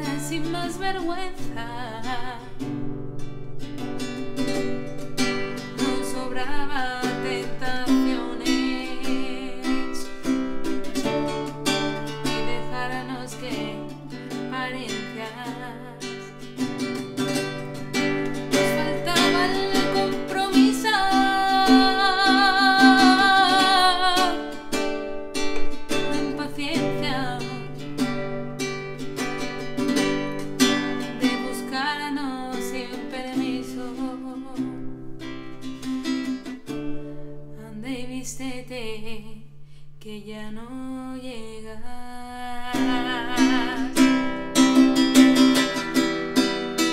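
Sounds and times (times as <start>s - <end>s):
woman singing a slow ballad: 0.0s - 2.9s, 5.8s - 16.4s, 18.5s - 24.8s, 25.9s - 27.9s, 31.0s - 34.9s, 37.5s - 44.6s
classical guitar: 0.0s - 46.9s.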